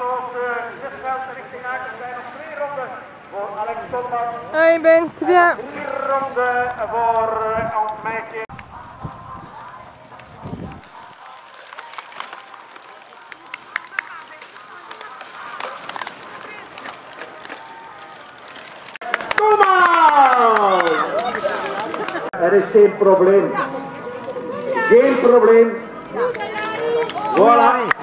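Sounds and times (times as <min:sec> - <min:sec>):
loud long cheer falling in pitch: 0:19.0 - 0:22.3.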